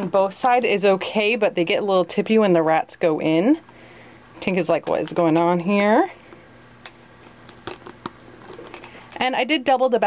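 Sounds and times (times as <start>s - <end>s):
faint steady hum: 0.0s - 10.0s.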